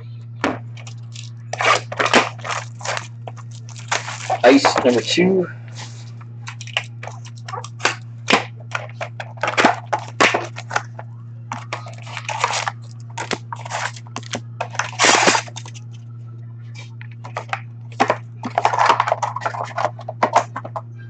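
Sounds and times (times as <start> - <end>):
steady low hum: 0.0 - 21.0
foil wrappers crinkling: 0.7 - 16.0, 16.8 - 20.7
cardboard snaps and clicks: 11.5 - 15.9.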